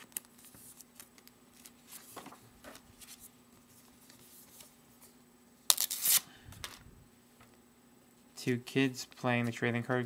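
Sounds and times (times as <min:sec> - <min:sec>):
low steady hum: 0:00.0 - 0:10.0
card sheets rustling and scraping: 0:00.1 - 0:04.8.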